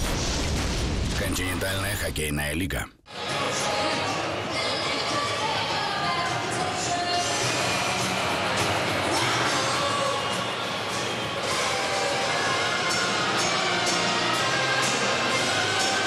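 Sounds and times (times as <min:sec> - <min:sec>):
music over public address: 0:03.1 - 0:16.0
crowd din: 0:03.2 - 0:16.0.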